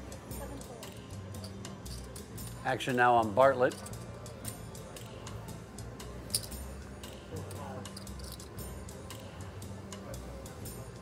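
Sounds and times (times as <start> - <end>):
quiet background music: 0.0 - 11.0
poker chips clicking: 7.9 - 8.5.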